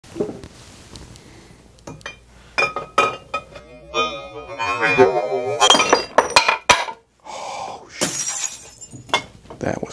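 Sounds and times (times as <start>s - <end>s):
glass bottles clinking: 1.9s - 7.0s, 8.0s - 9.4s.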